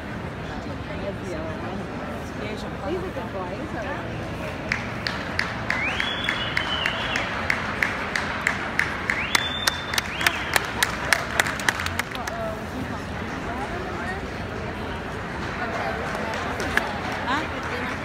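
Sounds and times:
crowd chatter: 0.0 - 18.0
spectators clapping in rhythm: 4.5 - 12.7, 15.2 - 18.0.

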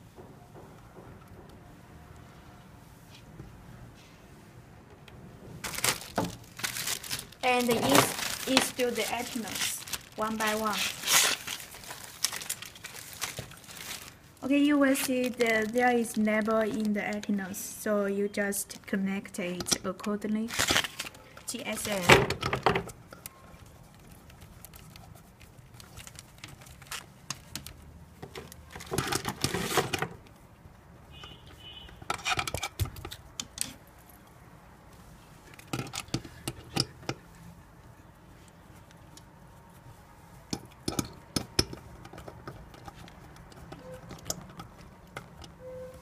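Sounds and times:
antennas clicking and rattling: 5.0 - 17.7, 40.4 - 46.0
plastic bag crinkling: 5.6 - 17.6, 20.4 - 22.2, 23.2 - 29.9.

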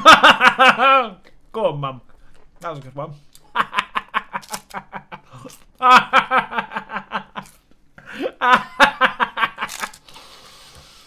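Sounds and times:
man laughing: 0.0 - 1.2, 3.4 - 10.0.

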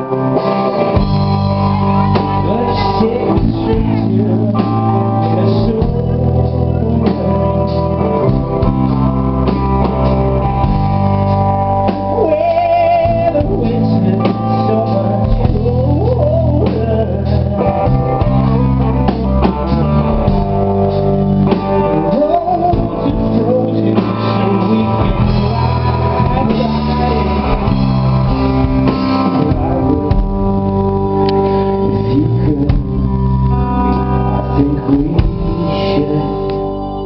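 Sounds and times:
drum kit: 0.0 - 36.6
electric guitar: 0.0 - 37.0
keyboard: 0.0 - 37.0
person singing lead vocal: 0.0 - 37.0.

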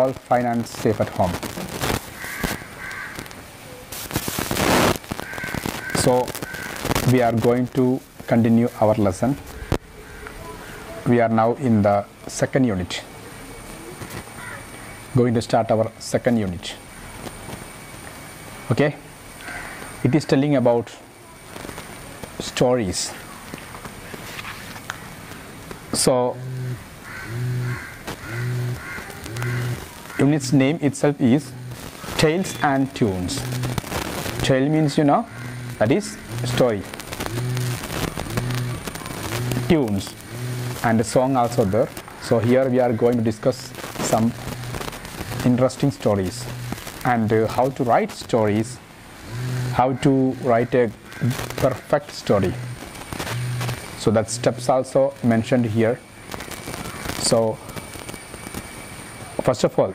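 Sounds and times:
crows cawing: 2.1 - 3.4, 5.1 - 6.9, 9.5 - 11.0, 14.3 - 15.1, 19.4 - 20.4, 24.9 - 25.6, 26.5 - 30.4, 34.8 - 36.4, 41.6 - 43.2, 49.4 - 52.1, 56.7 - 57.2
rush of noise: 4.0 - 7.4, 26.4 - 47.2, 50.9 - 54.7.

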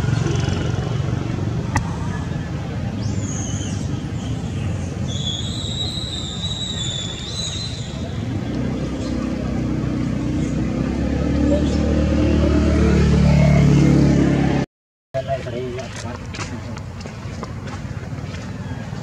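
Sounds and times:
vehicle engine humming: 0.0 - 6.4, 7.1 - 19.0.

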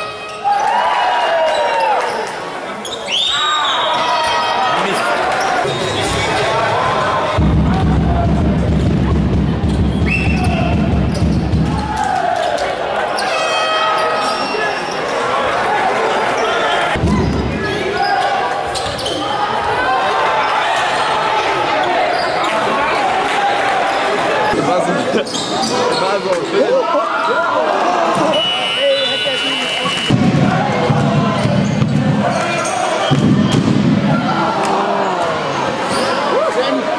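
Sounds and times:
voices echoing in sports hall: 0.0 - 36.9.

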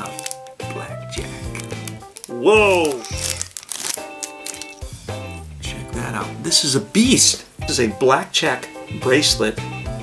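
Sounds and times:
plastic bag crinkling: 0.0 - 5.5
background music with held notes: 0.0 - 10.0.

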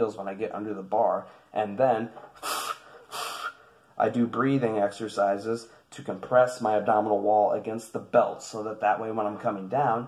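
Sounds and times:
man taking sharp breaths: 2.1 - 4.0.

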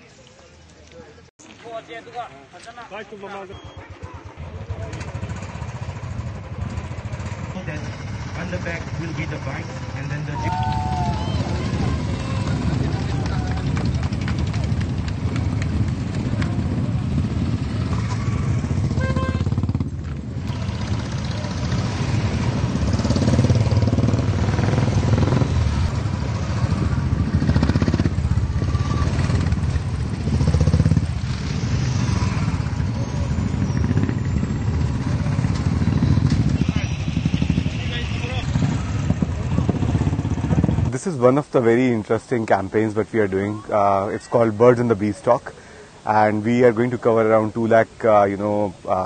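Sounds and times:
motorcycle engines running: 0.0 - 49.0.

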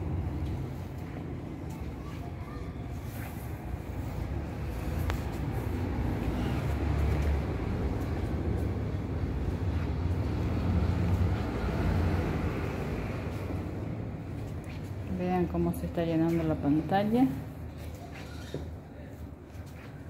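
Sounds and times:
rumble of passing traffic: 0.0 - 20.0.

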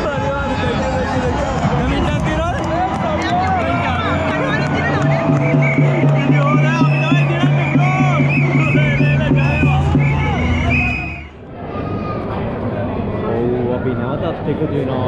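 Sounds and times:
fans chanting and shouting: 0.0 - 11.4
fast steady drumbeat: 0.1 - 11.1
low horns holding notes: 3.7 - 11.3.

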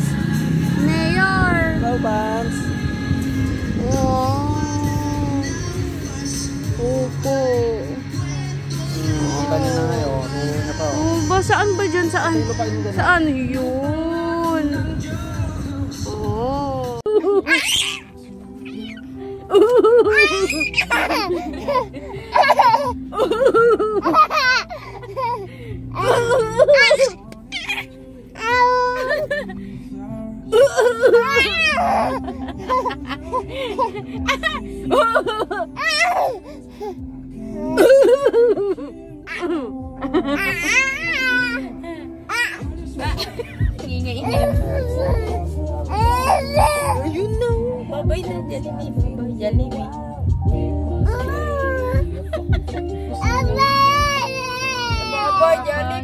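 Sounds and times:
baby whimpering and squealing: 17.5 - 19.2, 20.1 - 21.3, 26.0 - 29.2, 31.0 - 32.3, 35.8 - 36.9, 44.2 - 47.2.

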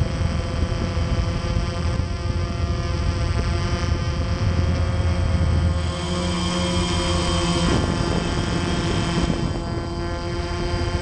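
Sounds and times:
drone motors humming: 0.0 - 11.0.

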